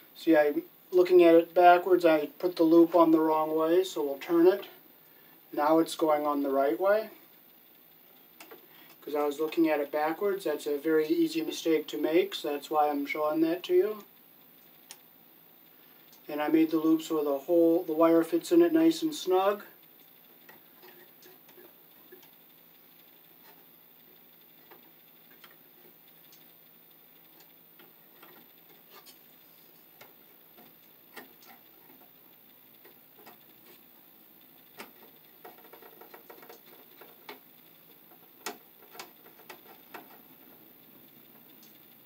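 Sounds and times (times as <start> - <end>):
small clicks and ticks: 1.4 - 42.0.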